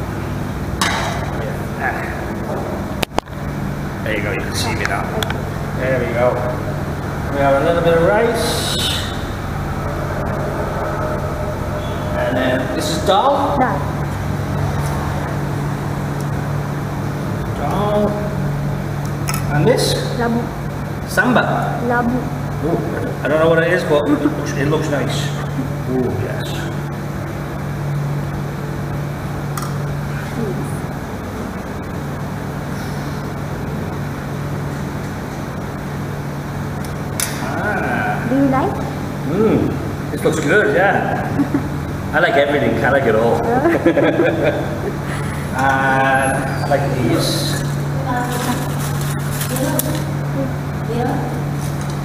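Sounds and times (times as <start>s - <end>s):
low mechanical hum: 0.0s - 52.0s.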